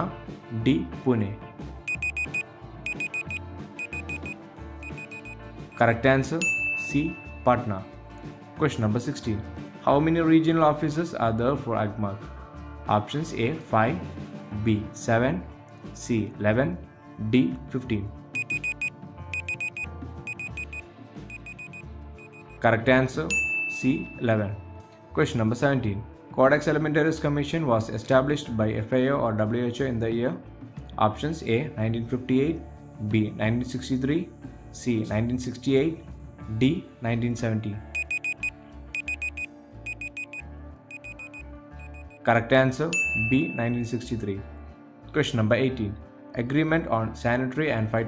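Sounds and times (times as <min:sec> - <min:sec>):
soft background music: 0:00.0 - 0:48.0
high electronic timer beeps: 0:01.9 - 0:05.4, 0:18.4 - 0:22.6, 0:38.0 - 0:42.2.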